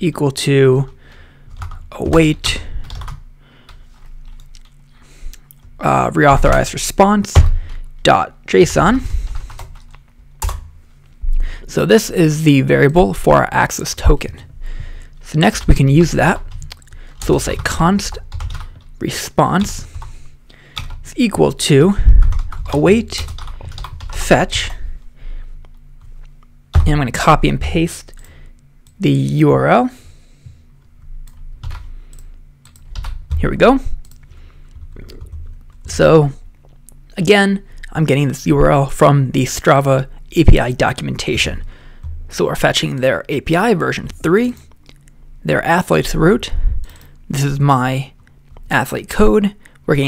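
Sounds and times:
computer keyboard typing: 1.5s - 4.8s, 9.3s - 10.7s, 15.5s - 18.9s, 20.8s - 21.0s, 22.1s - 24.8s, 31.2s - 36.0s
keyboard keys clicking: 22.1s - 24.2s.

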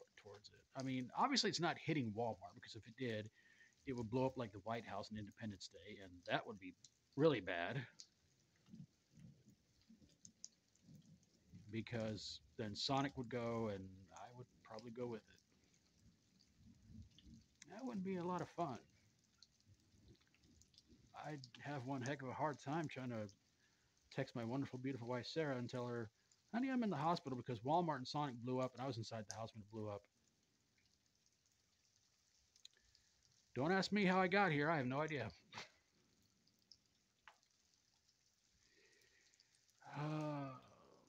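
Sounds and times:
faint water drips: 0.0s - 41.0s.

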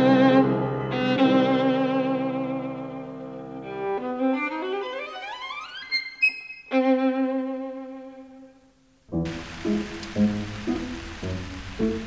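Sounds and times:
violin playing: 0.0s - 12.0s.

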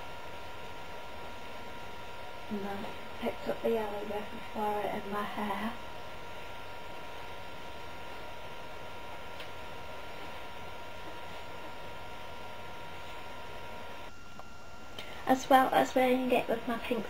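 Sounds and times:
faint high electrical whine: 0.0s - 17.0s.

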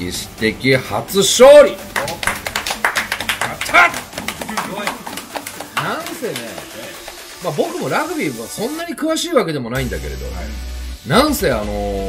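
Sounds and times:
group clapping: 1.8s - 7.9s
voices cheering: 1.9s - 7.6s.

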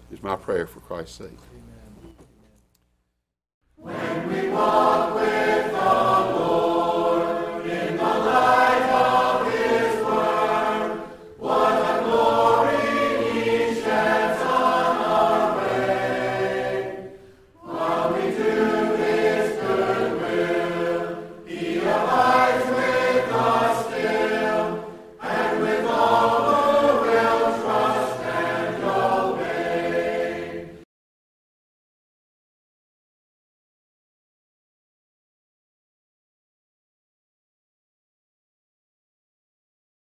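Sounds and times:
choir singing a hymn: 3.8s - 30.8s.

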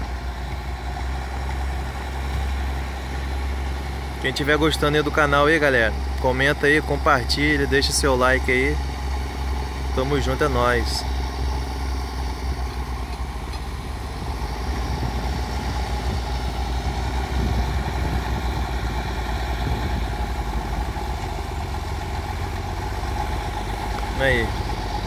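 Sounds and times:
diesel tractors rumbling: 0.0s - 25.0s.

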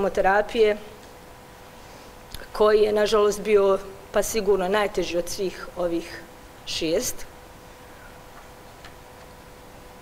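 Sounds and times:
woman speaking: 0.0s - 1.0s, 2.4s - 7.3s
faint constant hum: 0.0s - 10.0s.

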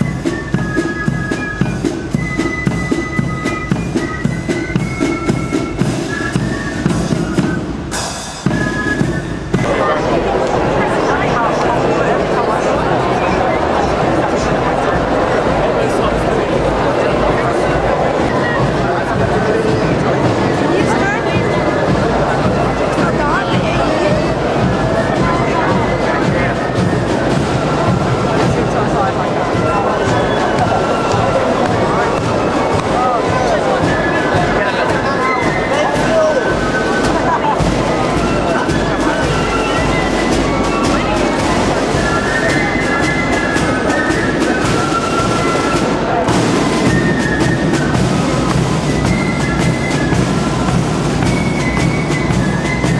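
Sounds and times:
band instruments holding notes: 0.0s - 52.9s
crowd chatter: 0.0s - 52.9s
marching band drums: 0.0s - 52.9s.

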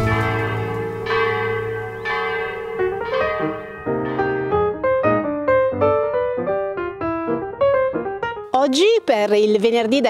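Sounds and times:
church bells ringing: 0.0s - 5.1s.

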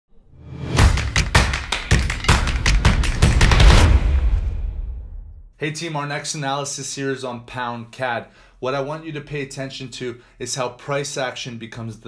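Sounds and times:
sharp percussive hits: 0.5s - 5.3s.

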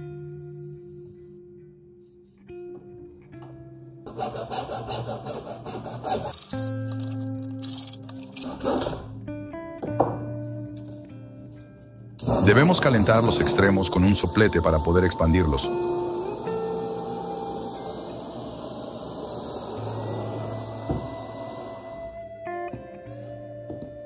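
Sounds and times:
hacksaw sawing plastic pipe: 4.1s - 6.4s
plucked guitar music: 9.0s - 12.2s.

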